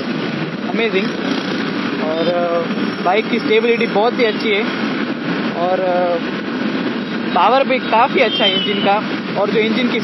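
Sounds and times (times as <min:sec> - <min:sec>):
wind rushing over microphone: 0:00.0 - 0:10.0
rider speaking: 0:00.6 - 0:01.4, 0:02.0 - 0:04.8, 0:05.6 - 0:06.3, 0:07.3 - 0:10.0.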